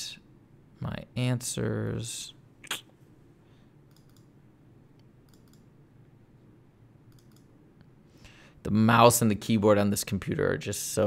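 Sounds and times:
computer mouse clicks: 0:03.9 - 0:04.3, 0:05.0 - 0:05.7, 0:07.1 - 0:07.5.

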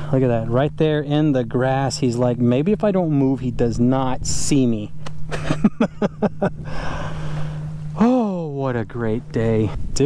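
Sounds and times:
constant low hum: 0:00.0 - 0:10.0
man laughing: 0:05.3 - 0:07.2.

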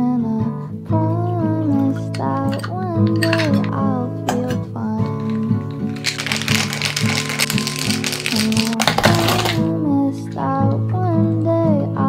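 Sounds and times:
background song: 0:00.0 - 0:12.0
ice rattling in cocktail shaker: 0:01.9 - 0:09.7.

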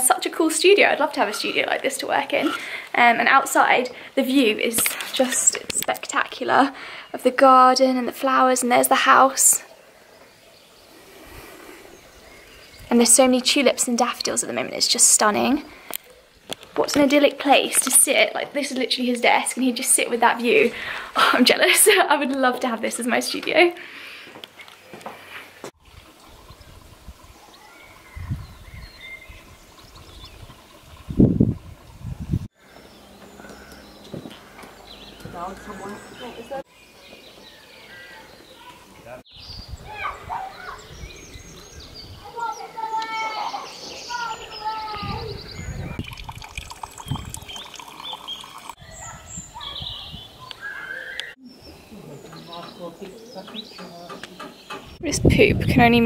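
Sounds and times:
wind rumble on microphone: 0:25.9 - 0:32.5, 0:39.3 - 0:42.3, 0:44.8 - 0:47.7, 0:48.8 - 0:50.4, 0:54.8 - 0:56.0
birds chirping and singing: 0:26.0 - 0:56.0.

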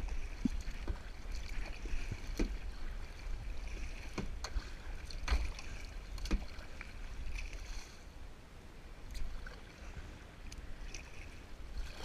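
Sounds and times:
paddle splashing in water: 0:00.0 - 0:08.0, 0:09.1 - 0:12.0.

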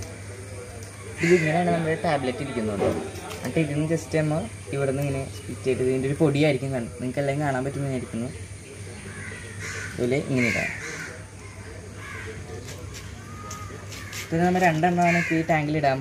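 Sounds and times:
crows cawing: 0:01.1 - 0:02.1, 0:09.0 - 0:16.0.

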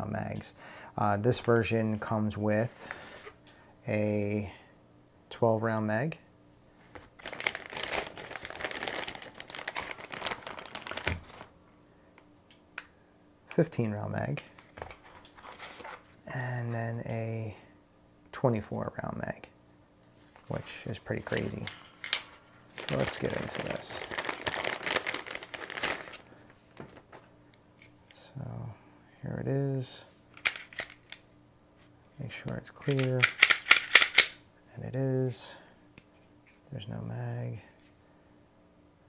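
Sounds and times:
plastic bag crinkling: 0:07.0 - 0:11.5, 0:21.2 - 0:27.0.

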